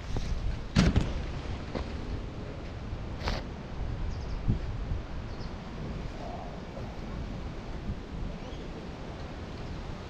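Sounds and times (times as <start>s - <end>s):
wind on microphone: 0.0s - 10.0s
quadcopter thumping on dirt: 0.7s - 2.0s.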